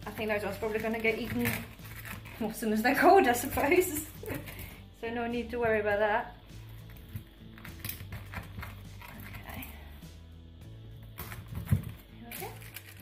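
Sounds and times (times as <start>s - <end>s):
background music: 0.0s - 13.0s
knife crunching through praline: 0.8s - 2.5s.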